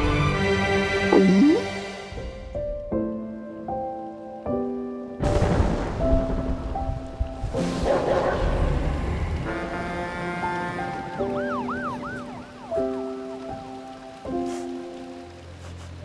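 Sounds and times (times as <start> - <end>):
soft music of held chords: 0.0 - 7.8, 9.3 - 16.0
warbling tone: 1.1 - 1.7
steady rain: 2.2 - 16.0.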